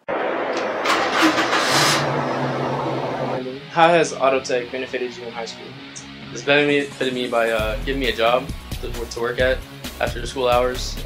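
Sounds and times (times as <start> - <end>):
car engine revving and idling: 0.2 - 3.6.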